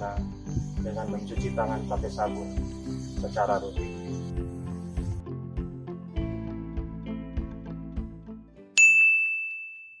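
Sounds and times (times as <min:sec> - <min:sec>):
background music: 0:00.0 - 0:08.8.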